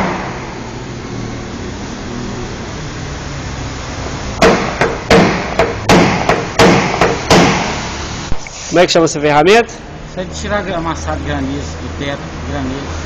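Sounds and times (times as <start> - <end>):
hammer tapping metal punch: 4.4 - 7.6.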